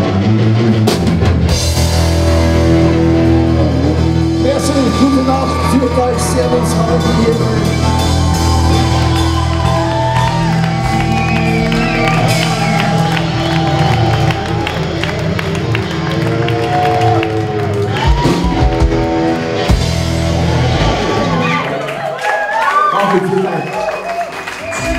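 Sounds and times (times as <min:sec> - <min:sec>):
electric guitar bending notes: 0:00.0 - 0:21.8
live rock band playing: 0:00.0 - 0:22.1.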